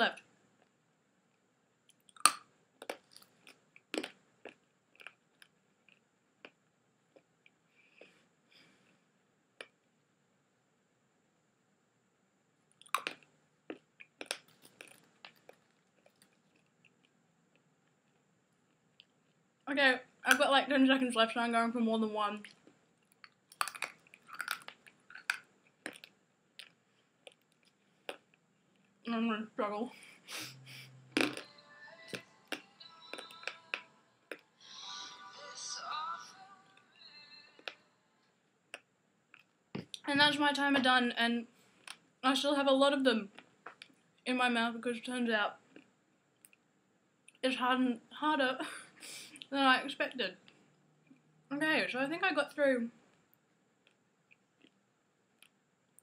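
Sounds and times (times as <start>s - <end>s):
mints crunched in mouth: 1.9s - 7.3s, 12.8s - 17.1s, 22.4s - 28.9s, 32.1s - 34.4s
soft mouth noise: 32.1s - 35.2s.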